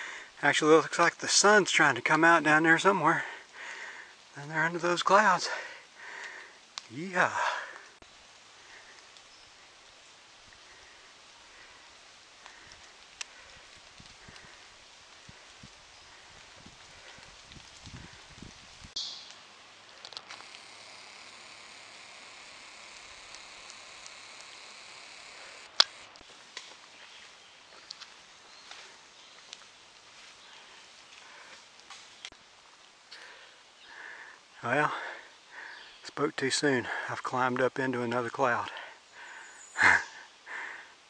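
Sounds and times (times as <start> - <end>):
steady hiss: 0.0 - 41.0
soft footsteps in forest: 2.0 - 34.6
sharp clicks: 19.0 - 26.2.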